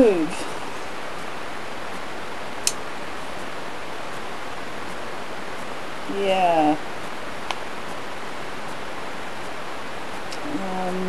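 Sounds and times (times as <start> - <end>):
microphone hiss: 0.0 - 11.0.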